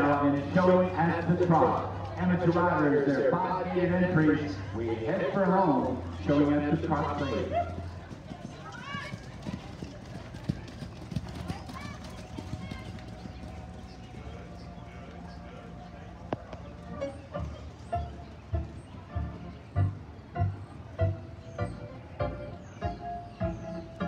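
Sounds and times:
background music: 0.0s - 8.8s, 11.8s - 24.0s
voices: 0.0s - 18.1s
horse hoofbeats trotting on dirt: 0.0s - 21.8s.

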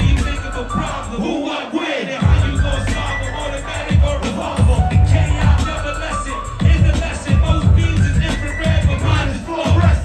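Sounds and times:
hip hop beat with heavy bass: 0.0s - 10.0s
rapping: 0.0s - 10.0s.

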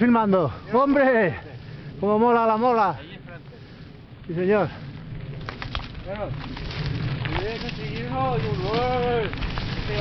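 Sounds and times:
bike rumbling over rough trail: 0.0s - 10.0s.

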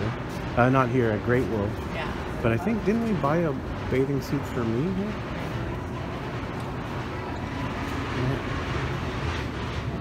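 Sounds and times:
steady low rumble: 0.0s - 10.0s.

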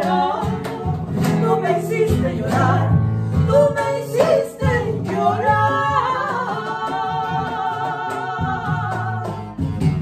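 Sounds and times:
cajon drum: 0.0s - 10.0s
nylon-string guitar: 0.0s - 10.0s
two women singing: 0.0s - 10.0s.

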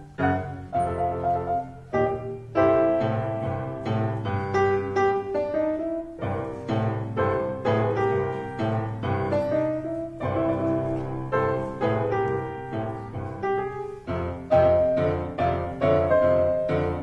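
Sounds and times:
boogie piano piece: 0.0s - 17.0s.

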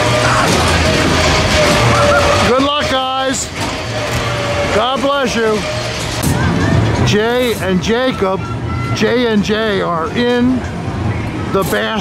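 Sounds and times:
fairground din: 0.0s - 12.0s
low hum: 0.0s - 12.0s.

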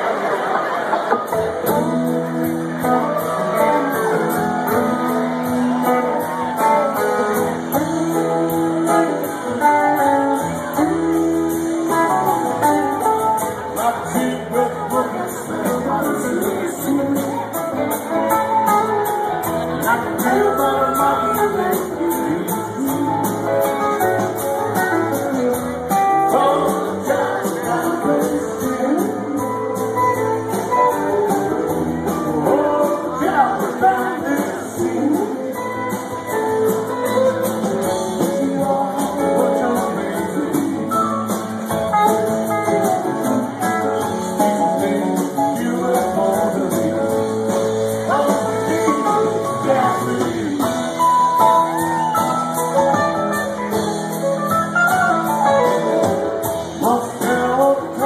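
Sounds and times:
electric guitars playing chords: 0.0s - 58.0s
live rock band with keyboards: 0.0s - 58.0s
drums with steady cymbal beat: 1.4s - 58.0s.

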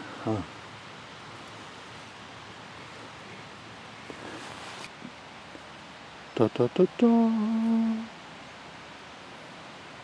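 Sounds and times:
outdoor background hiss: 0.0s - 10.0s
person saying huh: 0.2s - 0.5s.

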